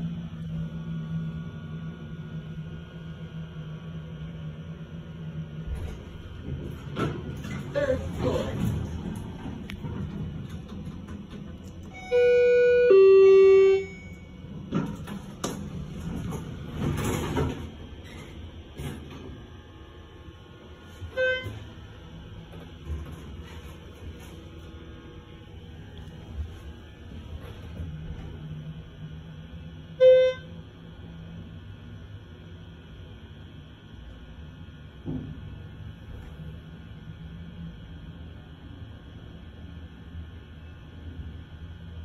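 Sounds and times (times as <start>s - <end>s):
elevator low travel hum: 0.0s - 42.0s
elevator two-tone chime: 11.9s - 14.5s.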